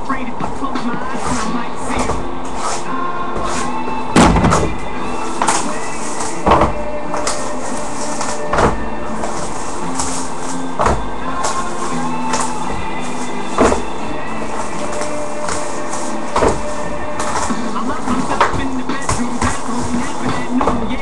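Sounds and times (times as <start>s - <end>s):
background music: 0.0s - 21.0s
cardboard boxes thudding down: 3.4s - 21.0s.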